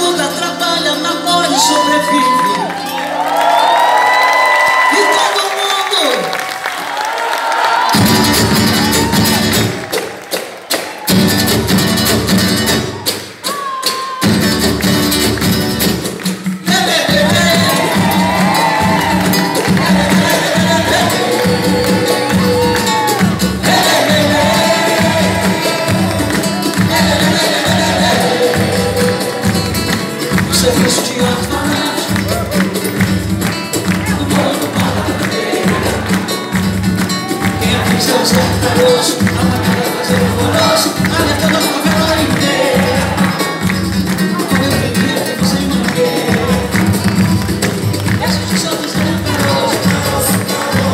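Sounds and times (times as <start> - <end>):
samba band playing: 7.8 - 50.9
hand percussion: 7.9 - 50.9
steady drum beat: 7.9 - 50.9
person singing: 16.6 - 33.0, 33.7 - 50.9.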